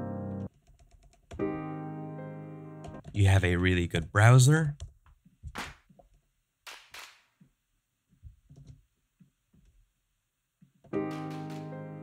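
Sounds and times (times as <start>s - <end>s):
keyboard and mouse clicks: 0.5s - 1.5s, 10.8s - 11.8s.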